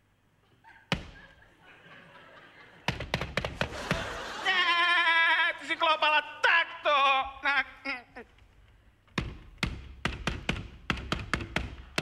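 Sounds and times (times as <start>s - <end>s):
fist knocking on wooden door: 9.2s - 12.0s.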